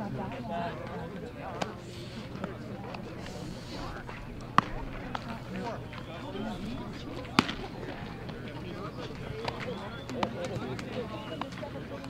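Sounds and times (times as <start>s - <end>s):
players' voices chattering: 0.0s - 12.0s
baseball caught in leather glove: 4.5s - 5.3s, 7.2s - 8.4s.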